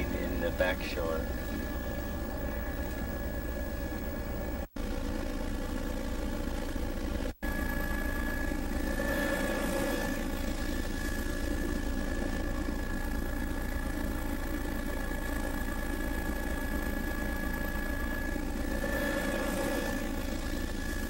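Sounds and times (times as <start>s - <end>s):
aircraft engine and propeller drone: 0.0s - 21.0s
thin constant whine: 0.0s - 21.0s.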